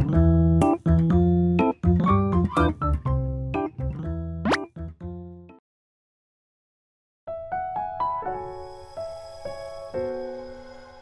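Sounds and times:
light keyboard music: 0:00.0 - 0:05.6, 0:07.3 - 0:11.0.

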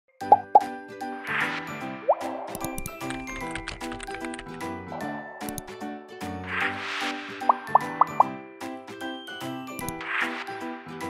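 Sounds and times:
light melodic tune: 0:00.1 - 0:06.6
quick clicks: 0:02.5 - 0:04.6.

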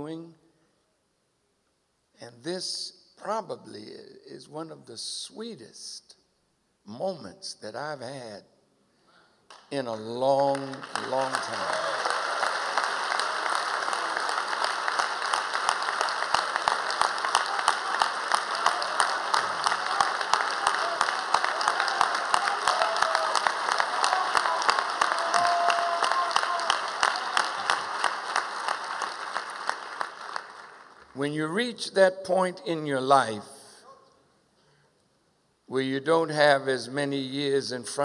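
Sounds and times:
large audience applauding: 0:10.3 - 0:31.2.

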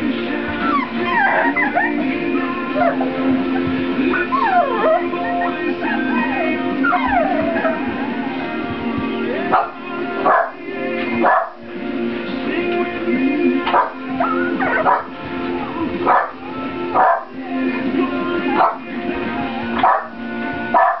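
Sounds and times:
background music with held notes: 0:00.0 - 0:21.0
puppies yipping and barking: 0:00.2 - 0:11.7, 0:13.6 - 0:17.4, 0:18.3 - 0:21.0.

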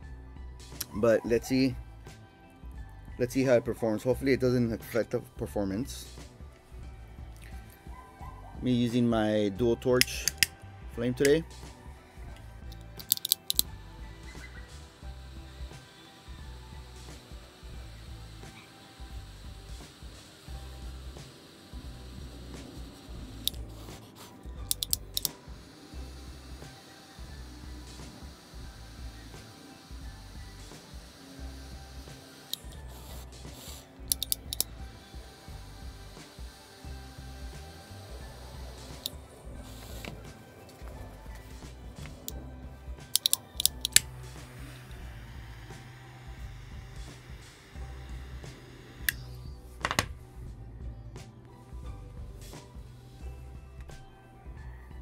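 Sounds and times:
background music with steady beat: 0:00.0 - 0:55.0
torch lighter ignition clicks: 0:00.7 - 0:01.0, 0:10.0 - 0:10.6, 0:11.2 - 0:50.2.

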